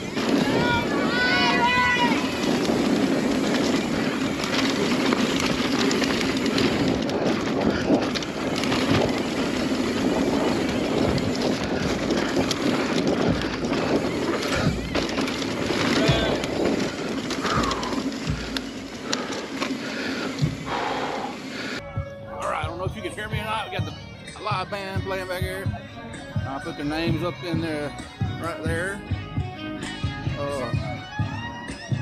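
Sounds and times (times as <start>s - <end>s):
wind on microphone: 0.0s - 19.3s
bike rattling and clattering: 0.0s - 21.8s, 22.4s - 32.0s
tyres on dirt: 0.0s - 32.0s.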